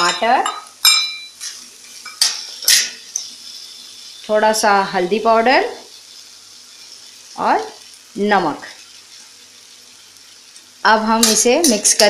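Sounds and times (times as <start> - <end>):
metal clink: 0.0 - 1.4
oil sizzling: 0.0 - 12.0
spoon scraping vegetables in pan: 1.4 - 3.4, 10.5 - 12.0.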